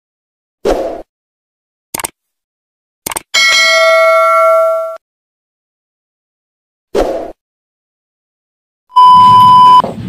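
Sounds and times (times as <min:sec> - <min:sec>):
notification bell ringing: 0:03.4 - 0:05.0.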